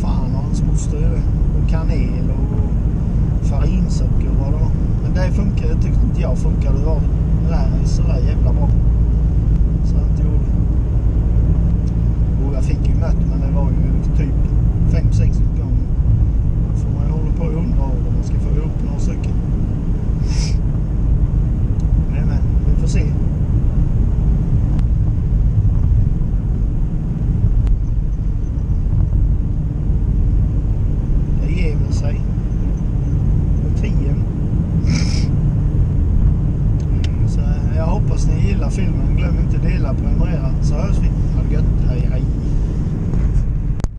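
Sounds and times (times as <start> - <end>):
road and engine rumble in car: 0.0 - 43.9.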